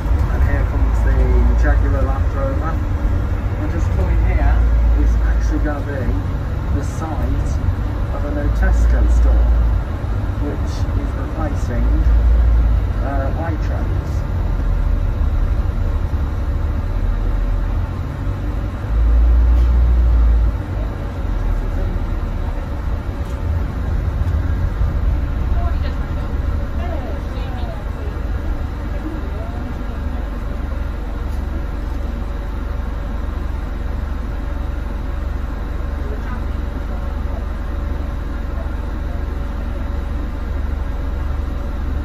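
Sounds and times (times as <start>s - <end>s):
bus engine and road rumble: 0.0s - 42.0s
deep low rumble: 0.0s - 42.0s.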